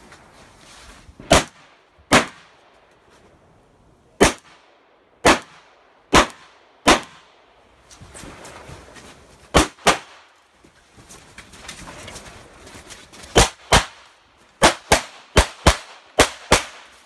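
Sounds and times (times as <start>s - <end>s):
pistol shots in pairs: 1.2s - 2.6s, 4.2s - 7.4s, 9.5s - 10.2s, 13.3s - 17.0s.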